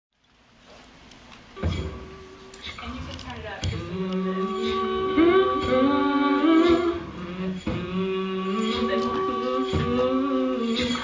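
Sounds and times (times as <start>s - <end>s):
steady low hum: 0.4s - 11.0s
woman humming: 2.6s - 11.0s.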